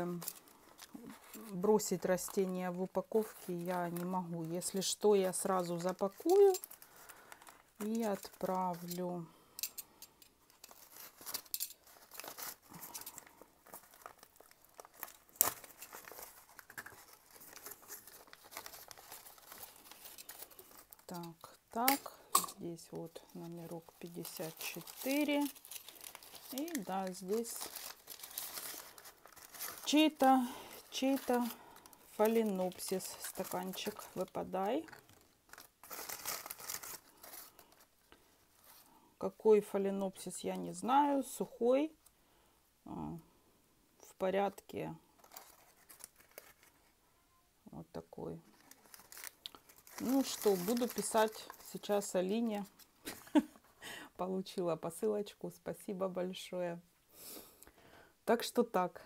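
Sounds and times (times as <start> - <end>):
paper rustling and crinkling: 0.0 - 9.0, 10.5 - 21.9, 23.2 - 39.0, 45.1 - 47.0, 48.4 - 53.7.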